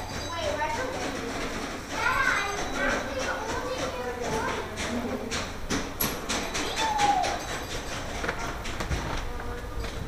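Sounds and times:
chatter of children and adults: 0.0s - 7.6s
child's high voice: 1.9s - 4.6s, 6.6s - 7.4s.

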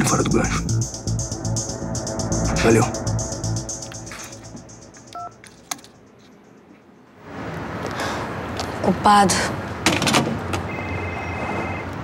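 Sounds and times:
music with a pulsing beat: 0.3s - 6.7s
electronic telephone beep: 5.2s - 5.4s, 10.7s - 11.9s.

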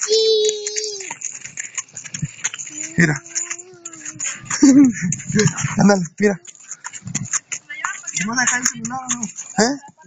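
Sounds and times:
person speaking: 2.2s - 10.0s.

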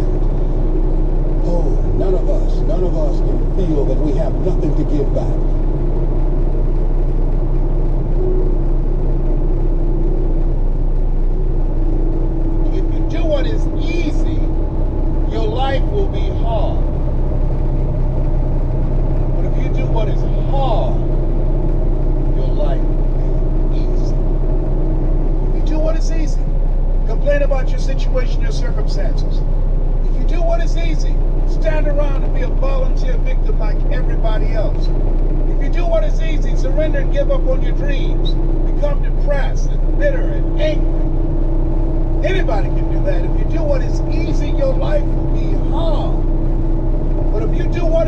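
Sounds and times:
road noise: 0.0s - 48.0s
steady hum: 0.0s - 48.0s
truck engine at highway speed: 0.0s - 48.0s.

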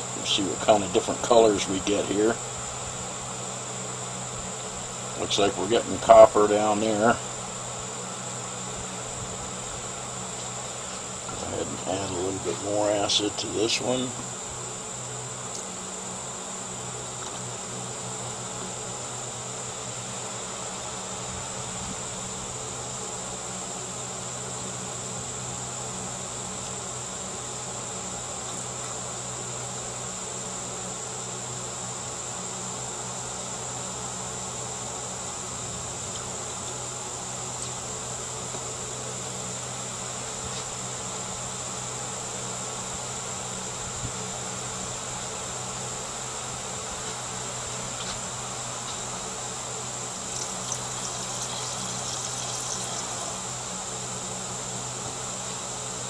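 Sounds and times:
electric fan humming: 0.0s - 56.0s
high-pitched insect drone: 0.0s - 56.0s.

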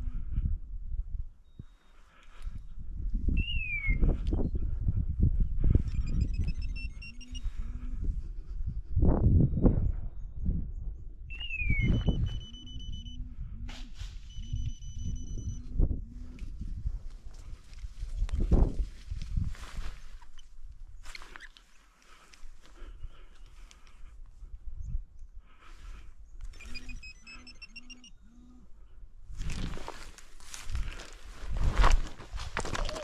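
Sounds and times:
wind buffeting microphone: 0.0s - 1.7s, 2.4s - 21.1s, 29.2s - 33.0s
repeated animal calls: 5.8s - 8.5s, 11.3s - 16.6s, 26.5s - 29.0s
high falling chirp: 5.9s - 7.4s, 11.3s - 13.1s, 26.5s - 28.2s.

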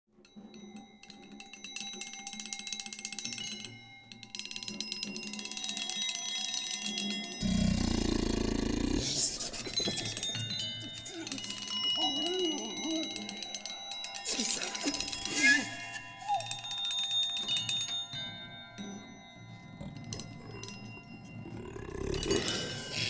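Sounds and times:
ringing metal percussion music: 0.2s - 23.0s.

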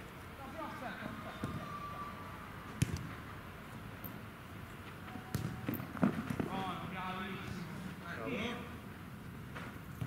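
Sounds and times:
football kicked on artificial turf: 5.3s - 6.5s.

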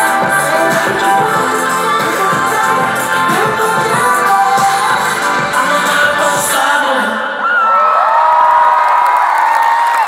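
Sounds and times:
live music: 0.0s - 7.2s
crowd cheering and whooping: 7.4s - 10.0s.

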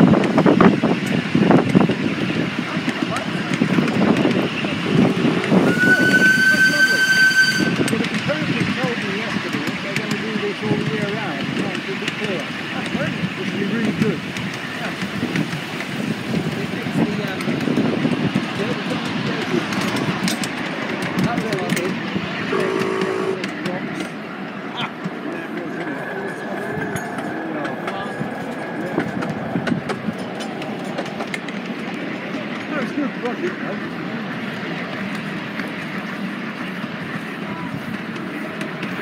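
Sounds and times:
miniature train running: 0.0s - 39.0s
indistinct voices: 1.5s - 39.0s.

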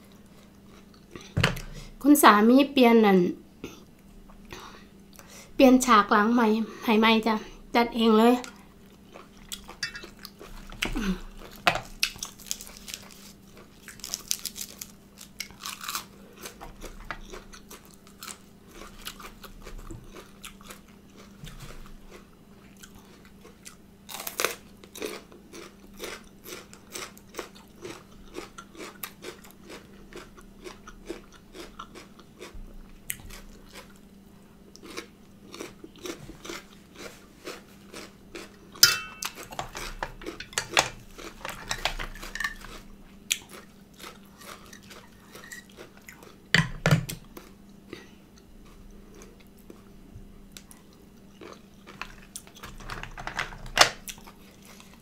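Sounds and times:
chewing and crunching vegetables: 0.0s - 1.8s, 8.4s - 55.0s
faint steady hum: 0.0s - 55.0s.

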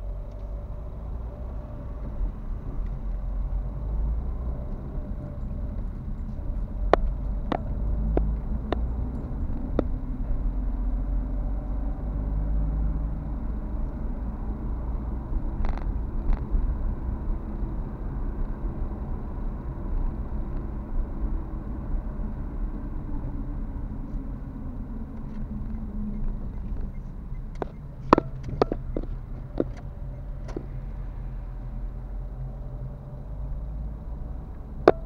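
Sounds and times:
car engine and road rumble: 0.0s - 35.0s.

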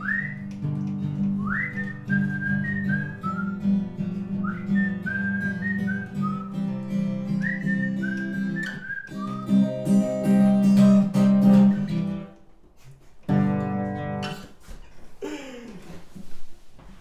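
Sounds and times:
man whistling a melody: 0.0s - 11.9s
strummed acoustic guitar: 0.0s - 15.1s.

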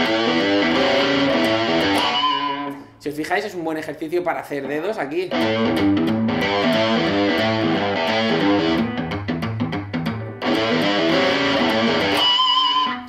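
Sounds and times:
distorted electric guitar riff: 0.0s - 3.0s, 5.3s - 13.0s.

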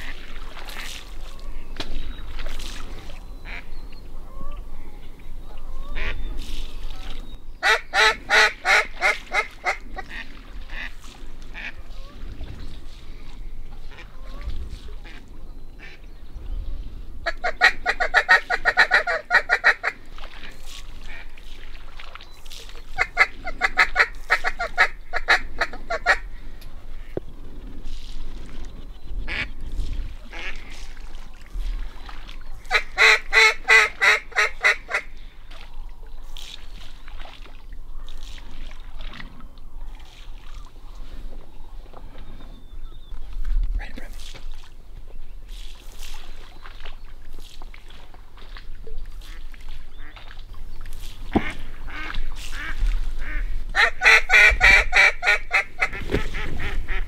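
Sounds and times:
duck quacking rapidly: 7.6s - 10.9s, 17.3s - 20.0s, 32.7s - 35.1s, 51.4s - 57.0s.

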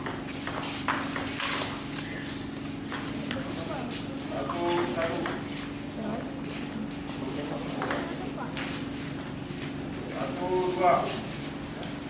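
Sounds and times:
table tennis ball clicking: 7.8s - 9.3s.

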